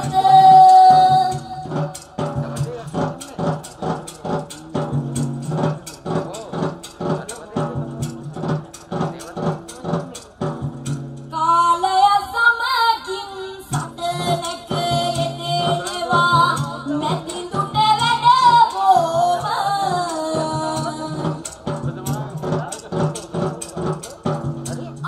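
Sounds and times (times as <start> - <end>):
woman singing through a pa: 0.0 - 2.2, 11.3 - 21.8
music with a steady beat: 0.0 - 11.4, 13.7 - 25.0.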